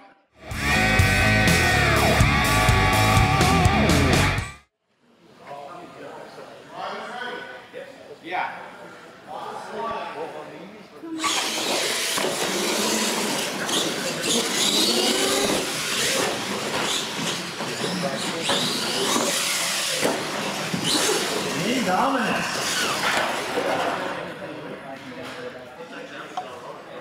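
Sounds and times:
toy truck motor whine: 11.2 - 21.7, 22.5 - 23.2.

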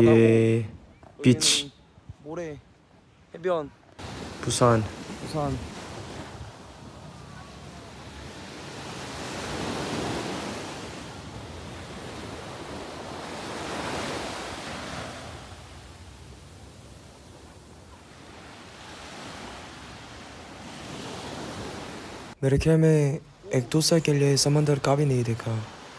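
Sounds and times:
small waves breaking on sand: 4.0 - 22.4, 23.3 - 25.9.

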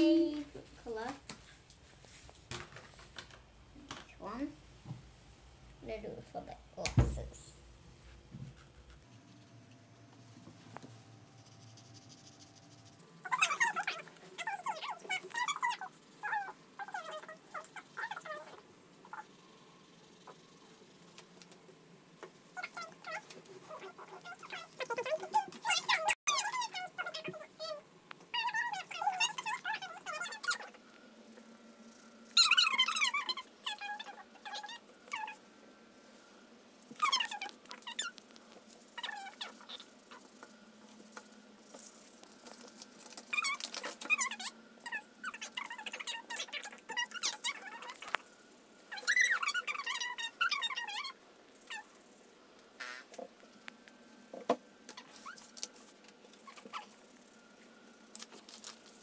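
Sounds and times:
pens squeaking on paper: 10.7 - 19.3, 22.2 - 35.4, 36.9 - 48.3, 48.9 - 51.9, 52.8 - 53.3, 54.9 - 57.0, 58.1 - 59.0.

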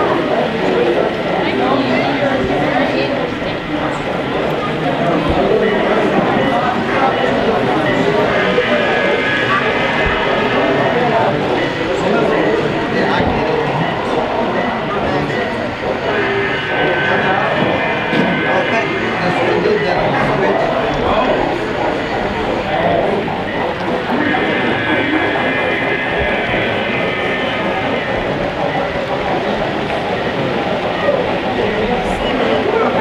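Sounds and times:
model trains running: 0.0 - 33.0
people talking: 0.0 - 33.0.

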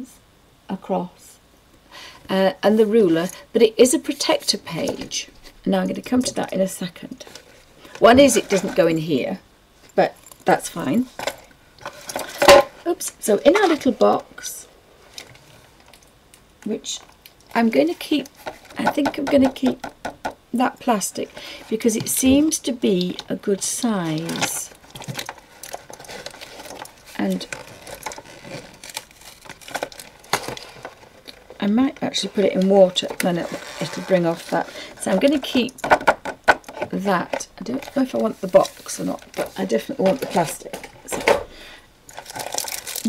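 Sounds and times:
plastic packaging crinkling: 23.1 - 36.8, 42.1 - 43.0.

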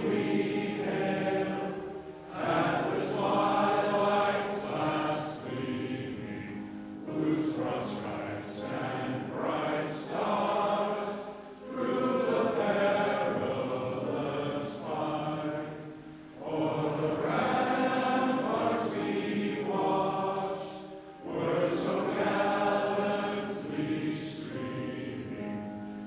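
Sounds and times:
crowd singing in unison: 0.0 - 25.9.

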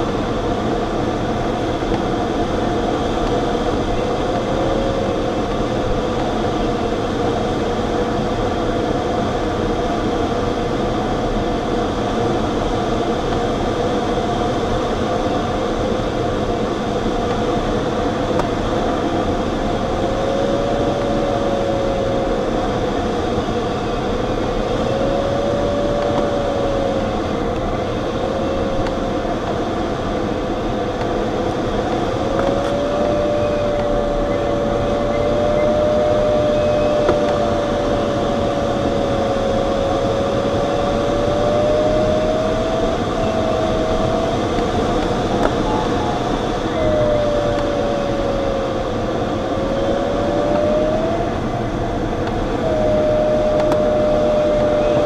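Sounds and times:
wavering variometer tone: 0.0 - 55.0.

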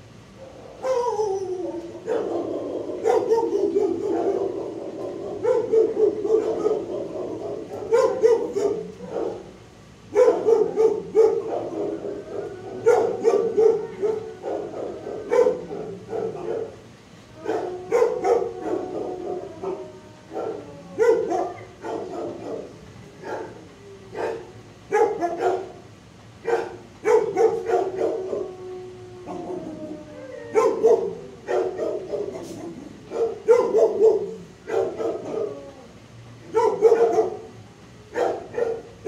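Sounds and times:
dogs howling: 0.3 - 39.0
dogs barking: 0.4 - 39.0.

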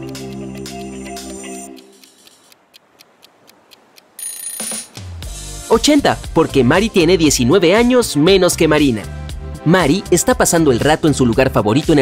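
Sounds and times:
clock-like ticking: 0.0 - 9.0.

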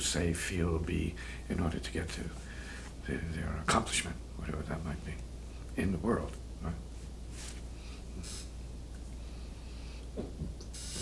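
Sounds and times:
low background hum: 0.0 - 11.0
clothing rustle: 6.9 - 8.0.

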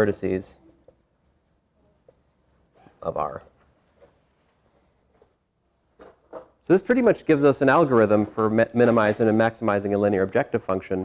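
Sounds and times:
marker scratching on whiteboard: 0.0 - 5.4.

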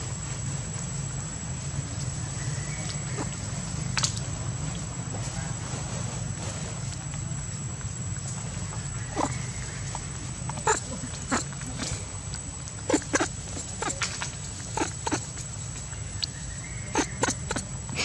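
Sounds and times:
monkey chewing smacks: 9.0 - 18.0.

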